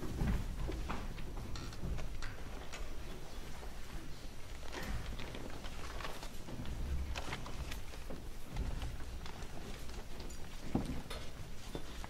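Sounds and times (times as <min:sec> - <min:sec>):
faint clicks and knocks of instruments: 0:00.0 - 0:12.0
low hum of hall: 0:00.0 - 0:12.0.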